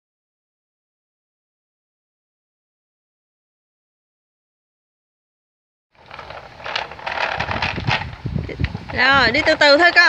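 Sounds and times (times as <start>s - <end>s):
wind buffeting microphone: 6.0s - 10.0s
wooden blocks rattling: 6.0s - 10.0s
wooden wheels rumbling on concrete: 6.0s - 10.0s.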